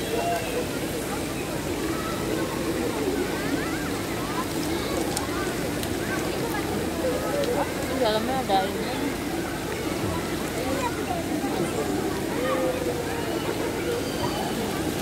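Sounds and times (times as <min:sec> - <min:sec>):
distant voices and chatter: 0:00.0 - 0:15.0
falling water from pool cascade: 0:00.0 - 0:15.0.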